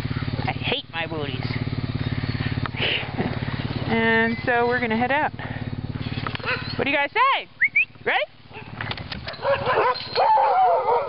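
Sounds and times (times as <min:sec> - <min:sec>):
dogs barking and yipping: 0:06.0 - 0:07.0, 0:07.9 - 0:11.0
dog howling long and wavering: 0:09.6 - 0:11.0.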